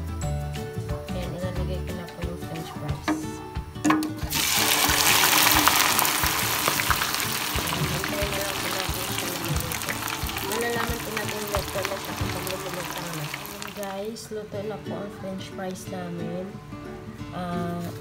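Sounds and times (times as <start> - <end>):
potatoes sizzling in hot oil: 4.2 - 14.0.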